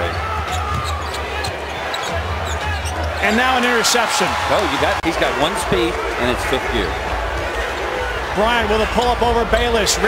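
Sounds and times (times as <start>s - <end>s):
game crowd noise: 0.0s - 10.0s.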